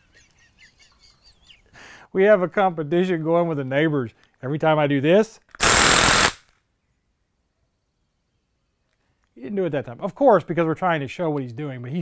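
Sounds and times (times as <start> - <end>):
impact wrench burst: 5.5 - 6.5.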